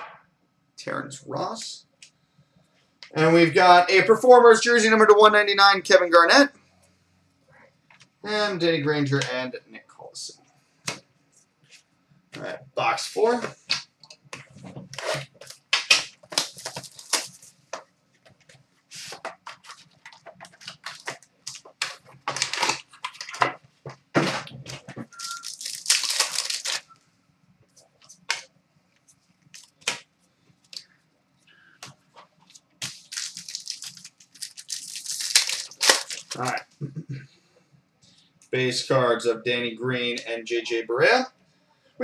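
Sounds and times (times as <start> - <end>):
plastic wrap tearing: 14.9 - 17.5, 19.0 - 23.4, 24.4 - 26.9, 32.8 - 36.6
foil wrapper crinkling: 14.9 - 17.6, 19.0 - 23.4, 25.0 - 27.0, 32.4 - 36.6.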